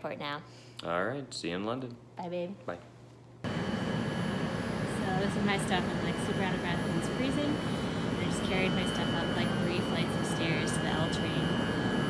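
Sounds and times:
faint high whine: 3.5 - 12.0.

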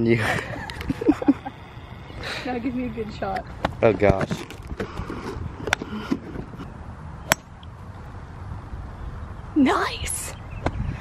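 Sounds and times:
faint background noise: 0.0 - 11.0
golf club striking ball: 7.2 - 7.7.

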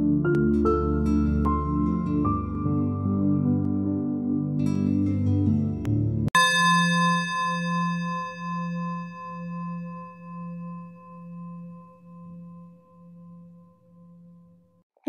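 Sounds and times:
soft music: 0.0 - 6.4
bell-like chime ringing: 6.4 - 14.6.

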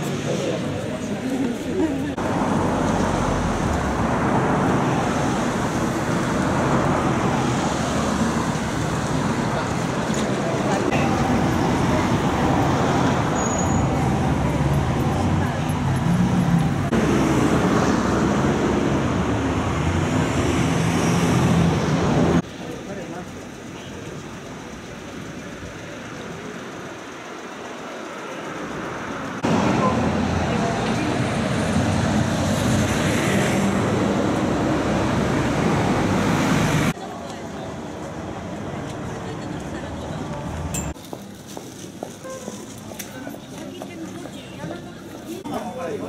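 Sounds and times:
people talking: 0.0 - 2.2, 9.4 - 12.8, 22.5 - 26.5, 36.9 - 40.7, 42.6 - 46.0
road traffic: 0.0 - 46.0.

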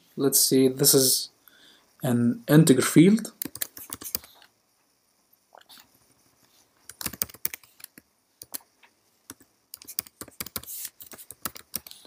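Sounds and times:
computer keyboard typing: 3.4 - 4.4, 6.9 - 8.6, 9.3 - 12.0.

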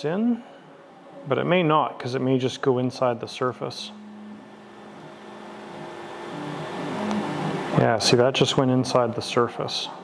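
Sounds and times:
machine motor hum: 2.1 - 9.3.

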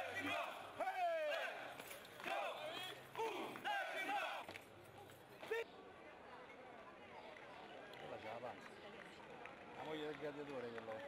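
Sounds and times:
men shouting calls: 0.0 - 4.5.

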